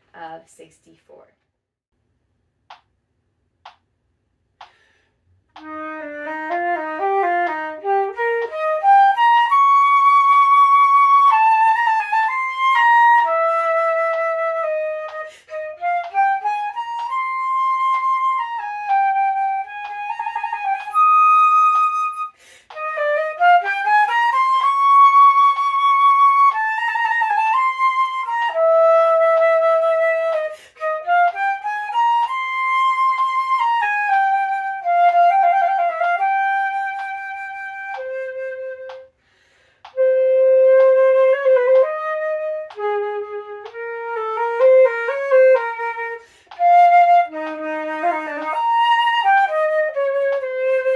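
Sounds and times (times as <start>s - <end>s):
flute playing: 5.5s - 39.2s, 39.8s - 50.9s.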